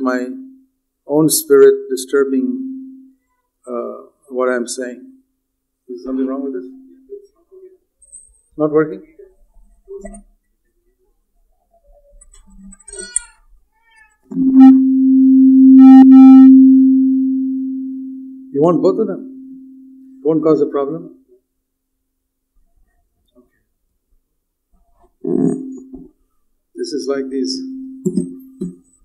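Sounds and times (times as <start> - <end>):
steady low hum: 14.3 - 20.2.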